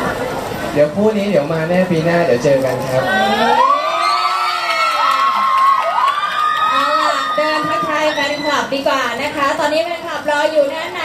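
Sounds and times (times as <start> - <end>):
crowd screaming and cheering: 2.9 - 8.8.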